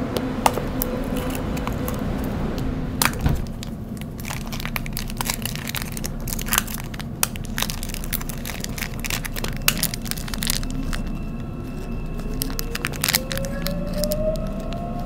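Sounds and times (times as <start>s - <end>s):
rising motor whine: 0.0s - 5.2s, 9.2s - 15.0s
subway train rumble: 0.0s - 15.0s
plastic wrapper crinkling: 0.4s - 2.3s, 3.0s - 15.0s.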